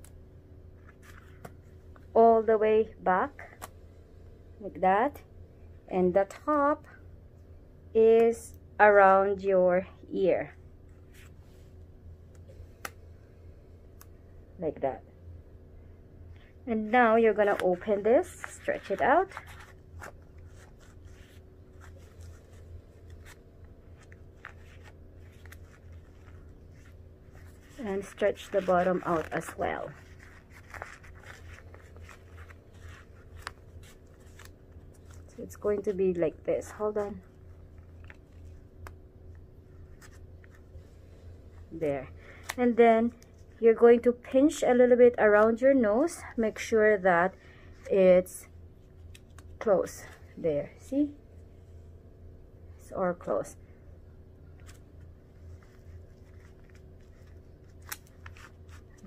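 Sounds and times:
steady low hum: 0.0 - 59.0
respirator mask rustling: 16.3 - 43.9, 54.3 - 59.0.

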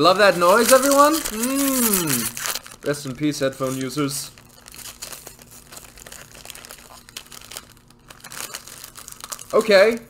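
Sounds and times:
wrapper crinkling and rustling: 0.0 - 10.0.

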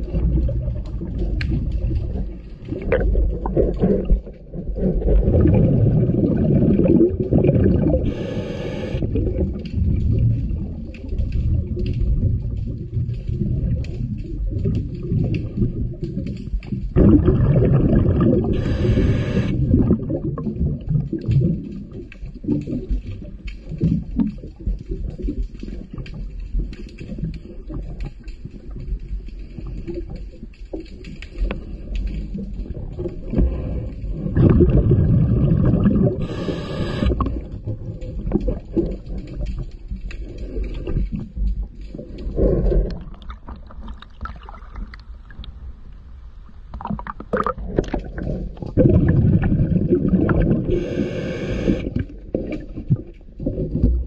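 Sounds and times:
underwater bubbles gurgling: 0.0 - 54.0
regulator inhalation hiss: 8.0 - 9.0, 18.5 - 19.6, 36.2 - 37.2, 50.7 - 51.8.

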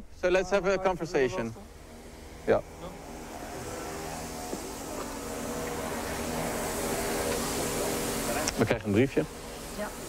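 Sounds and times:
engine droning: 0.0 - 10.0.

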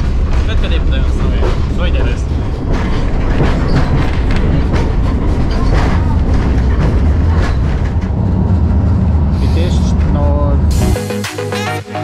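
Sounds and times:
wheels clacking over track: 0.0 - 10.6
railcar engine rumble: 0.0 - 11.3.

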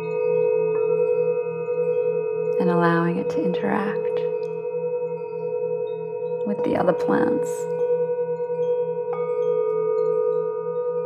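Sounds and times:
singing bowls ringing: 0.0 - 11.0.

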